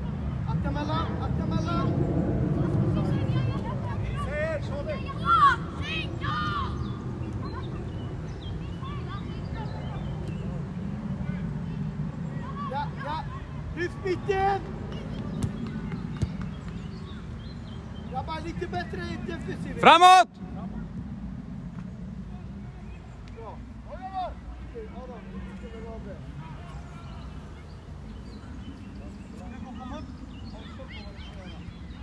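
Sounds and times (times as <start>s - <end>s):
steady low rumble: 0.0s - 12.5s
players and spectators shouting: 19.6s - 20.4s.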